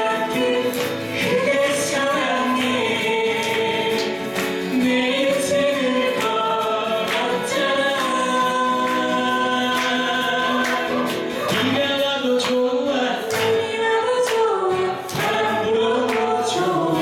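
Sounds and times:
strummed acoustic guitars: 0.0 - 17.0
woman and man singing duet: 0.0 - 17.0.

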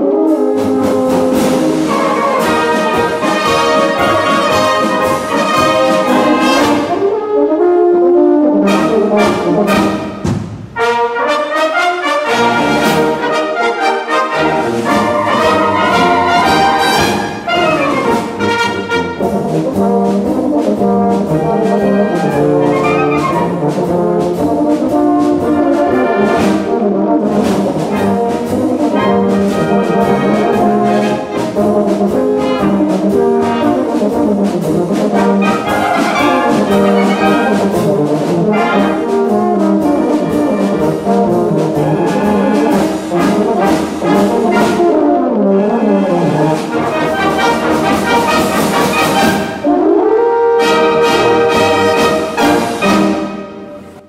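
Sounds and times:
tenor horns playing polka: 0.0 - 54.0
wind band accompanying: 0.0 - 54.0.

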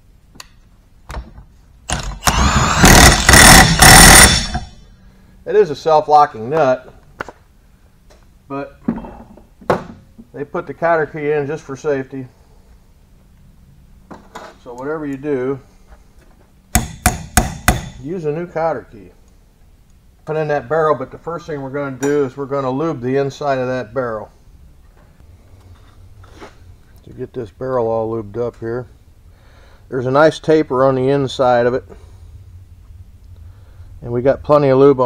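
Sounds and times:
impact wrench hammering: 1.9 - 4.8, 16.7 - 18.1.

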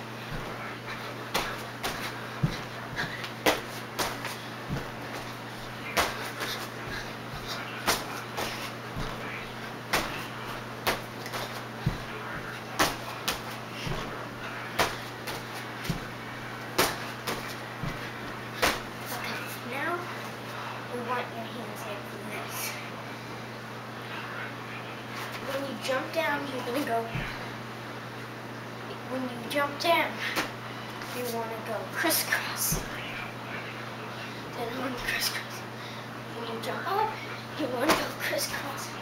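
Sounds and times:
steady low hum: 0.0 - 39.0
feet thumping on gym mat: 0.2 - 19.4.

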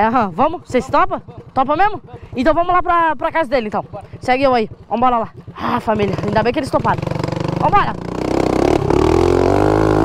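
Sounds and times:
small motorbike engine accelerating: 5.4 - 10.0.

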